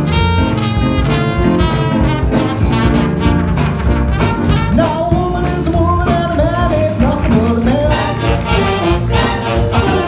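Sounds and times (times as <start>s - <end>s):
big band playing: 0.0s - 10.0s.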